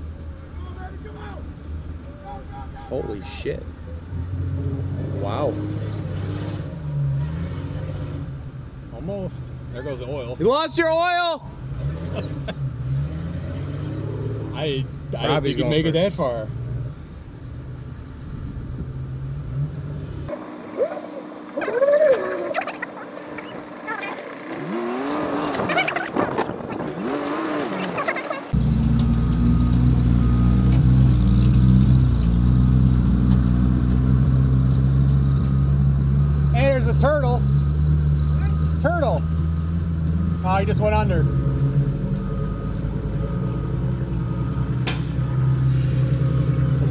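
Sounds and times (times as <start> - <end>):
vehicle engine idling: 0.0 - 5.5, 28.4 - 46.9
sounds rising and falling in pitch: 20.3 - 31.8.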